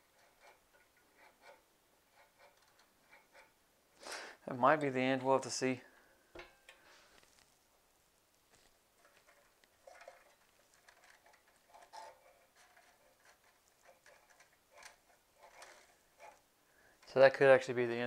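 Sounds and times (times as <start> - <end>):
faint small clicks and rustles: 0.0 - 3.6, 4.8 - 7.7, 8.3 - 17.4.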